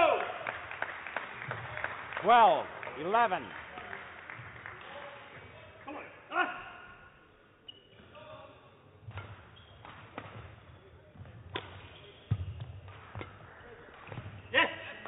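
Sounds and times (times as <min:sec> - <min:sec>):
racket striking shuttlecock: 0:09.0 - 0:10.6, 0:11.4 - 0:14.5.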